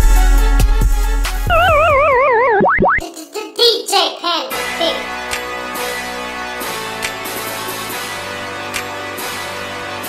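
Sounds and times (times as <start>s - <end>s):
hip-hop beat: 0.0s - 6.0s
warbling cartoon tone sliding down: 1.5s - 3.0s.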